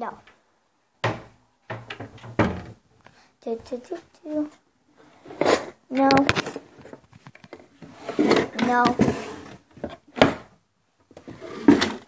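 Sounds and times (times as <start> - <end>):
cupboard door opening and shutting: 1.0 - 2.8, 5.2 - 10.5, 11.1 - 12.0.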